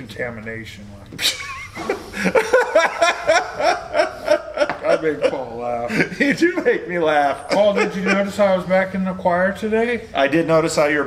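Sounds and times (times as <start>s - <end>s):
people laughing: 1.2s - 8.7s.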